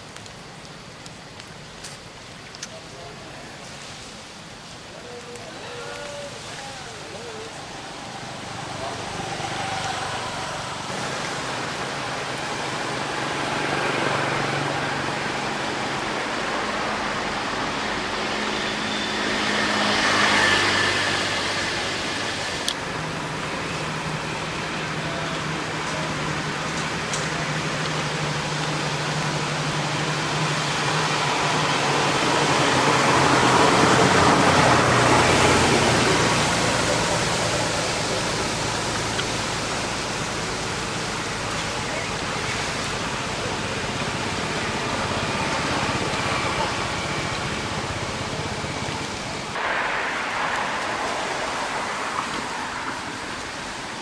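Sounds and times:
outdoor background noise: 0.0s - 54.0s.

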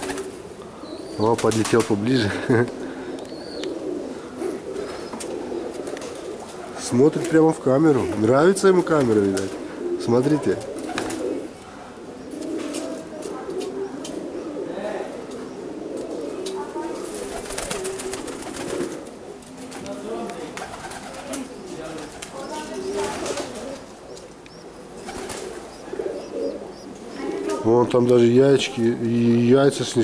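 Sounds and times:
pigeons cooing: 0.0s - 30.0s.

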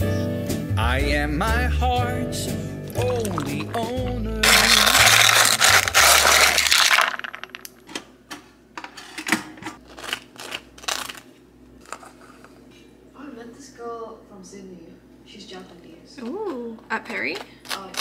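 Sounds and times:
song with singing: 0.8s - 5.2s
knife scraping toasted bagel: 4.4s - 6.7s.

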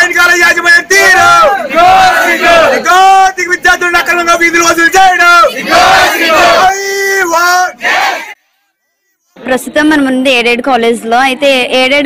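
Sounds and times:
man shouting slogan: 0.0s - 8.3s
crowd chanting reply: 0.0s - 8.4s.

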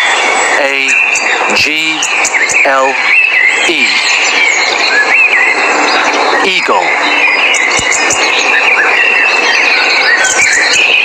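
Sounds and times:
steady loud rushing noise: 0.0s - 11.0s
bird whistled chirps: 2.0s - 11.0s.

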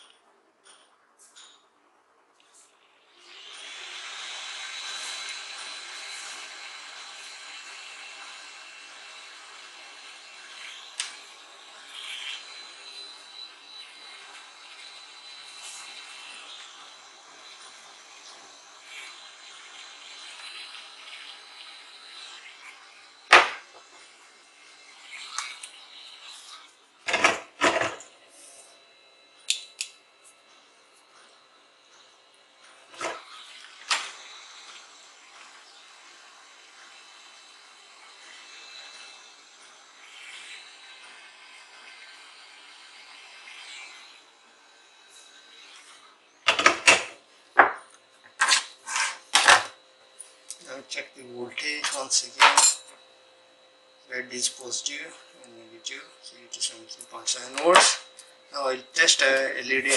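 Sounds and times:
hot air gun fan whine: 2.5s - 59.9s.

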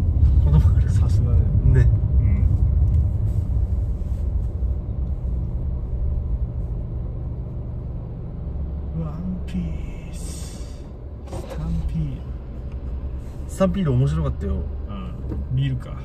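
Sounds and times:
car road and engine rumble: 0.0s - 16.0s.

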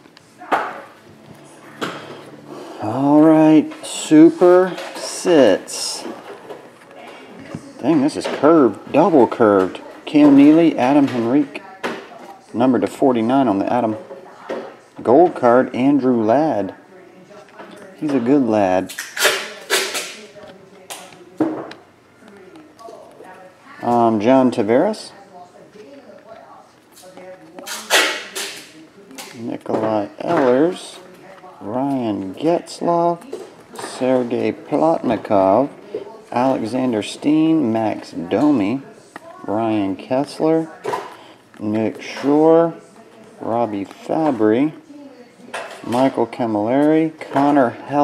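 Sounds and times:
trading cards being handled: 0.0s - 11.6s, 25.7s - 35.6s.

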